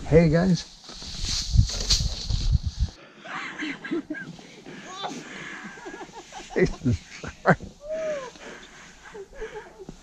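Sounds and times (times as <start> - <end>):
person laughing: 4.9 - 8.4.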